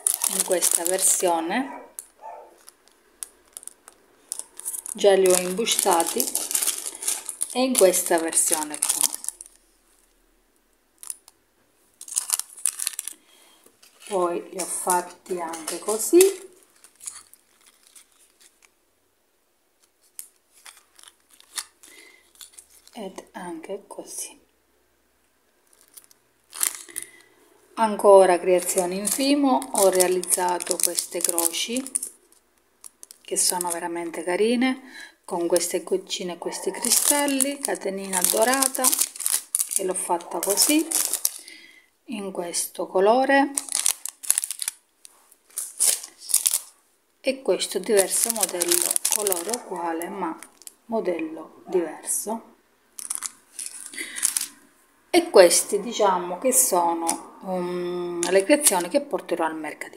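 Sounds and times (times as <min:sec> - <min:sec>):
plastic bags rustling: 0:00.0 - 0:10.2, 0:10.9 - 0:18.8, 0:19.8 - 0:23.1, 0:25.6 - 0:34.4, 0:35.0 - 0:41.8, 0:43.4 - 0:46.8, 0:47.6 - 0:50.9, 0:52.9 - 0:54.7, 0:56.6 - 0:57.2, 0:58.1 - 0:59.0.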